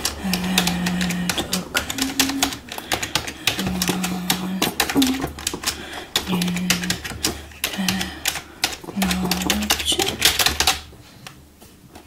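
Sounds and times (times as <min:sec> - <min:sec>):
fast keyboard typing: 0:00.0 - 0:10.9.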